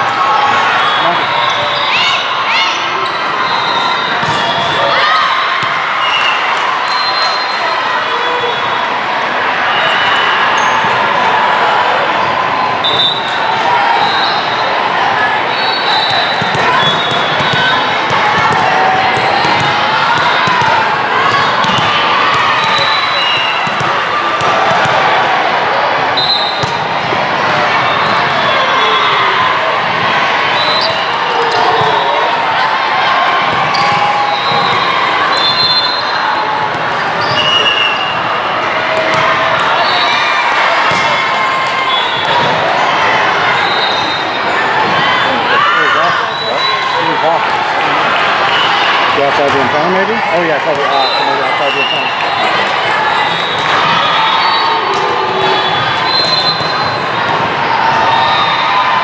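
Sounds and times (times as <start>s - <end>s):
volleyballs hit and bouncing: 4.0s - 5.9s, 16.0s - 25.3s, 26.5s - 28.6s, 33.3s - 35.6s, 38.9s - 43.0s.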